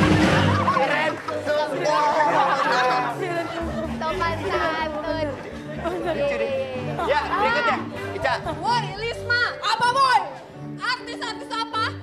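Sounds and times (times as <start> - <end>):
voices chattering and calling out: 0.3 - 10.6.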